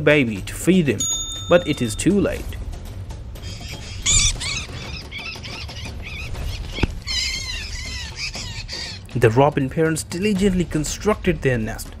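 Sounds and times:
background music: 0.0s - 12.0s
songbird chirping in distress: 3.3s - 9.2s.

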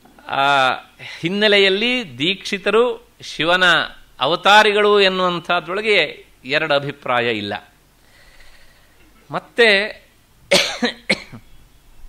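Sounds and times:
harsh cough: 10.5s - 11.4s
person clearing throat: 10.5s - 11.5s.

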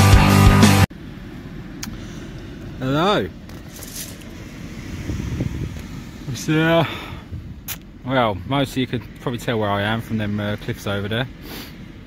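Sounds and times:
wind rumbling on microphone: 4.2s - 6.4s, 7.1s - 7.8s.

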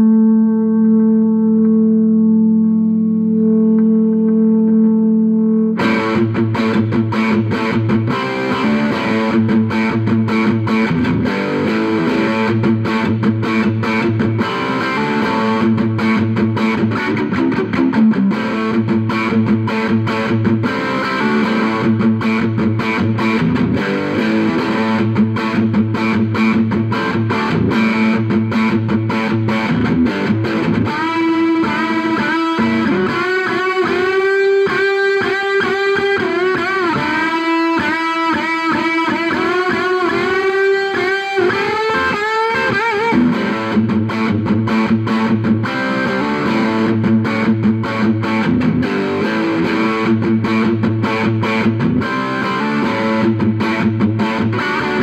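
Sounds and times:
overdriven electric guitar: 0.0s - 55.0s.

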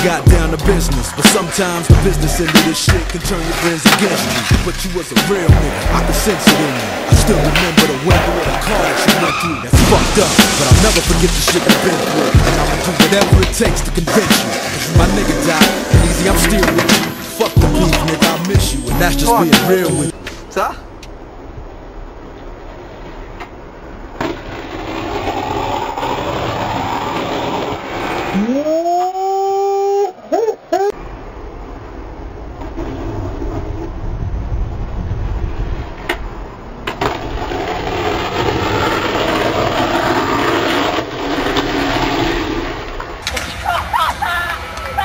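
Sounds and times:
skateboard wheels rolling on concrete: 0.0s - 45.0s
skateboard clacks: 2.4s - 17.2s, 36.8s - 43.8s
rising tone: 14.4s - 20.2s.

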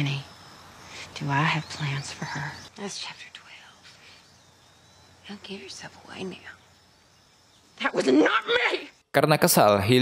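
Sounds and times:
woman speaking in a low voice: 1.0s - 3.8s, 5.2s - 6.6s.

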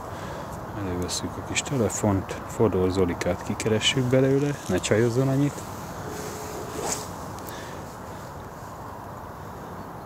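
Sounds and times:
outdoor background noise: 0.0s - 10.0s
short rustle: 4.0s - 8.8s.

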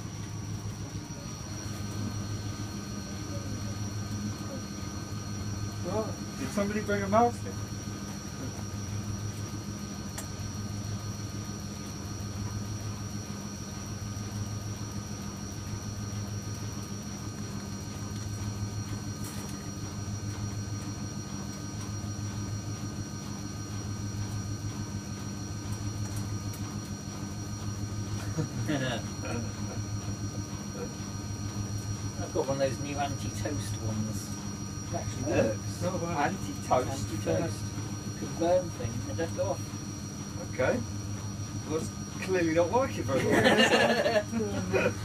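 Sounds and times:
washing machine humming: 0.0s - 45.0s.

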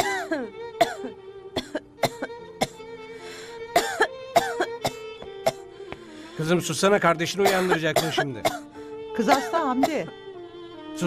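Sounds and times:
girl coughing hoarsely: 0.0s - 2.8s, 3.8s - 5.6s, 7.4s - 8.6s, 9.3s - 10.1s
soft string music: 0.0s - 11.0s.

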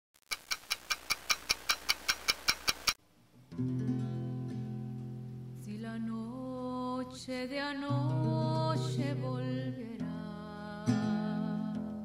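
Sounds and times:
rapid sharp ticking: 0.2s - 3.0s.

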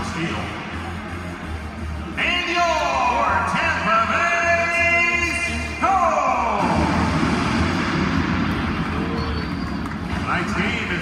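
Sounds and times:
arena music over speakers: 0.0s - 11.0s
reverberant arena din: 0.0s - 11.0s.

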